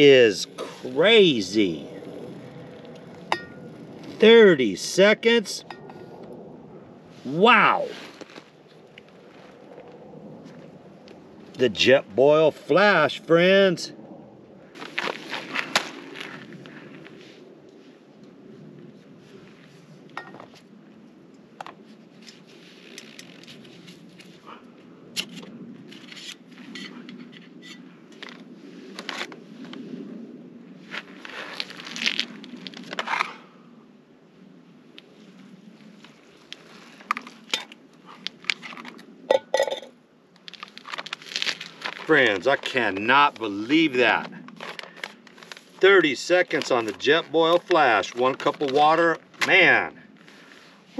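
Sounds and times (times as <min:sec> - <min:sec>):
steady low rush: 0:00.0 - 0:22.1
pot and stove parts clinking: 0:39.3 - 0:39.9.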